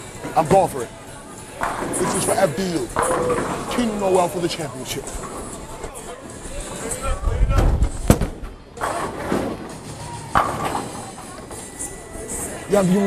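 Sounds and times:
background chatter: 0.0s - 13.0s.

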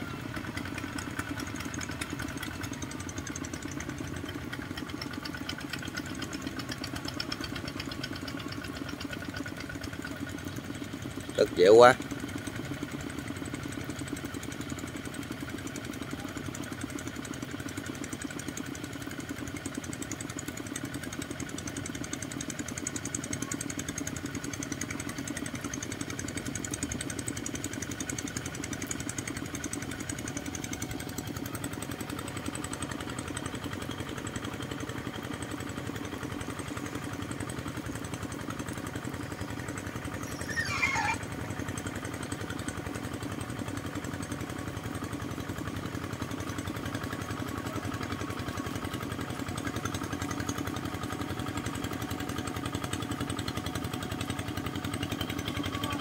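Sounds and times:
diesel tractor engines running: 0.0s - 56.0s.

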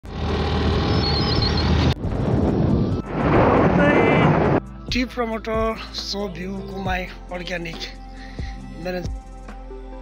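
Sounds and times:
short high chirps: 0.8s - 1.8s
wind rushing over microphone: 1.8s - 4.8s.

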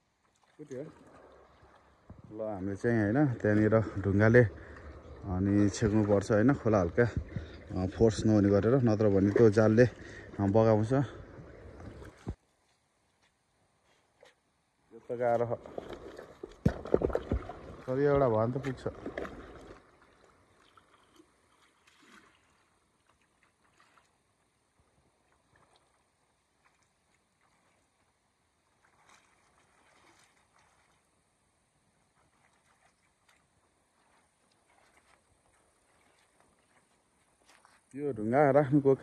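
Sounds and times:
river water splashing around rock: 15.2s - 24.2s, 28.6s - 31.2s.

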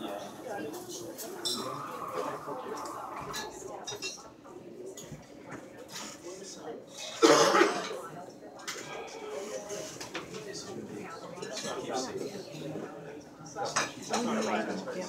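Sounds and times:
murmur of people talking: 0.0s - 15.0s.

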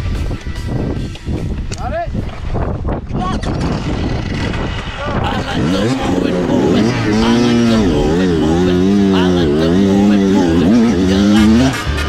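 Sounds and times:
wind on microphone: 0.0s - 11.0s
knocks and rattles from bike: 1.1s - 5.2s
two-stroke motorbike engine revving: 3.4s - 12.0s
pitched sweep: 4.9s - 12.0s.

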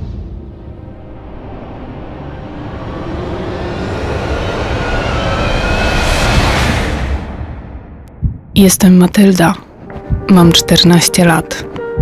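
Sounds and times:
rising whoosh riser: 0.0s - 8.5s.

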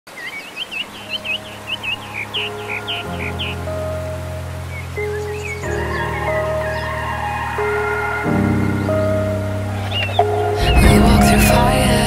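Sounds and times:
bird chirping: 0.1s - 11.6s
soft low music drone: 1.0s - 12.0s.

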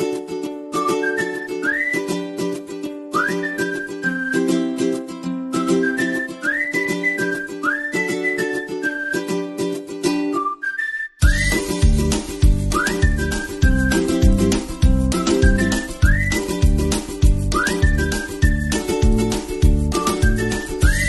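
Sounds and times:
whistled melody: 0.1s - 21.0s
plucked-string chords: 11.2s - 21.0s.

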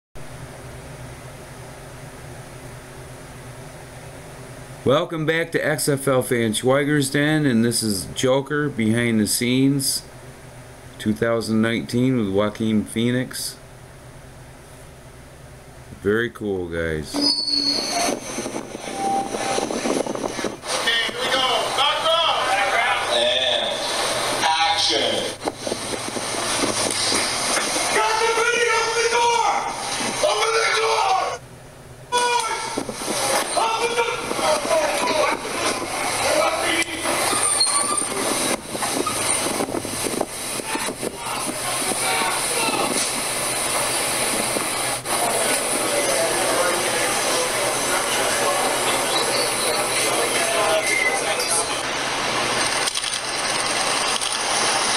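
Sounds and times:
subway platform noise: 0.2s - 54.9s
people's voices: 16.0s - 31.4s, 32.1s - 51.9s
brief high squeal: 17.1s - 18.2s, 18.9s - 19.6s, 37.4s - 38.2s.

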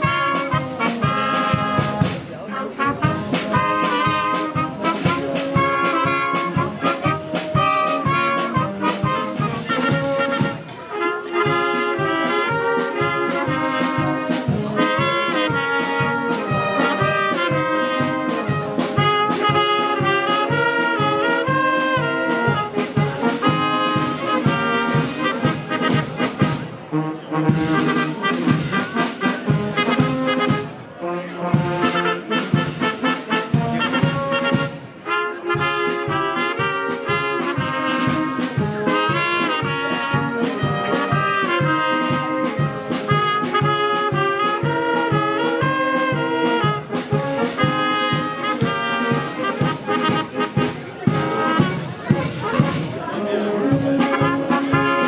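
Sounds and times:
brass band playing: 0.0s - 55.0s.

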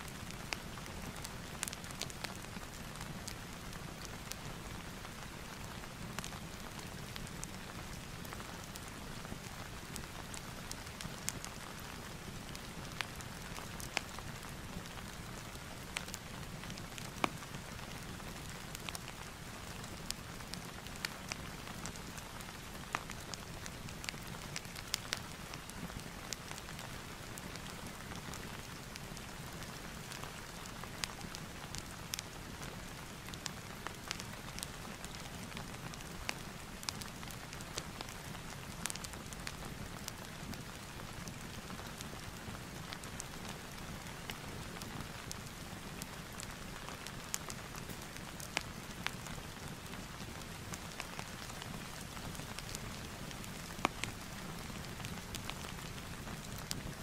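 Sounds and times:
fire popping and crackling: 0.1s - 57.0s.

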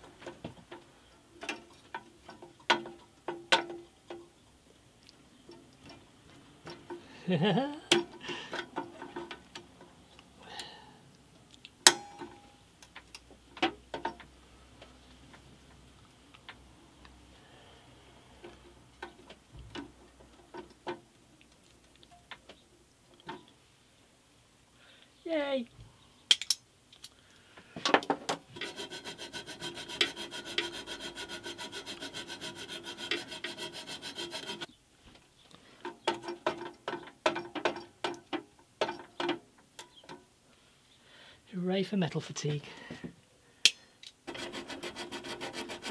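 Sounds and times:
hand file rasping on steel: 28.6s - 34.7s, 44.3s - 45.9s.

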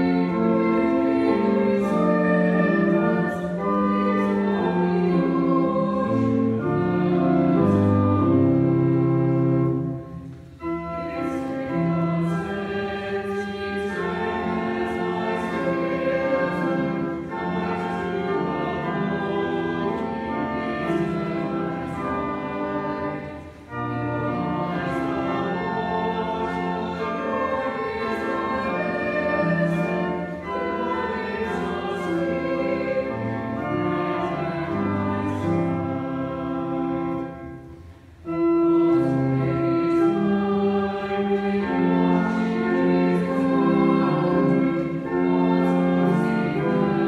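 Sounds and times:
church choir singing: 0.0s - 47.0s.

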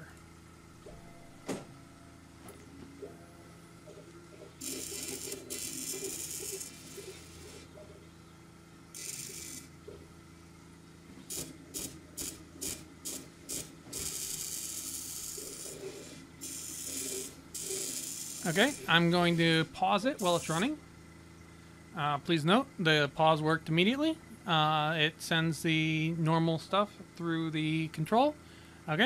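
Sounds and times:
steady fan hum: 0.0s - 29.0s
stepper motors whirring: 4.6s - 7.7s, 8.9s - 9.9s, 11.3s - 20.8s.

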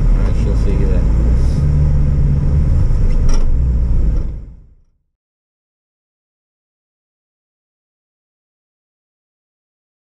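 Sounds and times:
engine hum: 0.0s - 4.9s
car engine and road rumble: 0.0s - 5.0s.

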